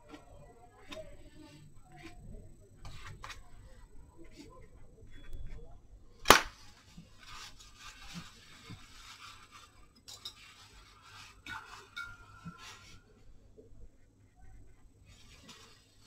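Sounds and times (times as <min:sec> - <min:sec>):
thin squeak: 0:05.0 - 0:05.8
scraping and rustling: 0:06.6 - 0:13.2, 0:15.0 - 0:16.0.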